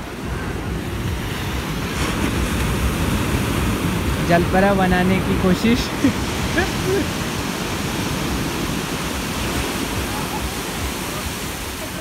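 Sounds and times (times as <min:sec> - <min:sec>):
ocean surf breaking on beach: 0:00.0 - 0:12.0.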